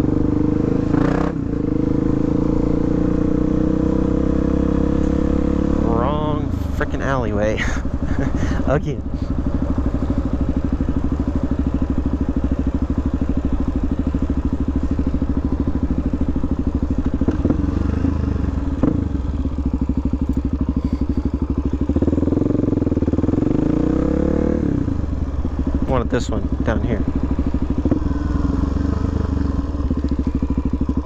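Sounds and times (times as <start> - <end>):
motorcycle engine running: 0.0 - 31.0.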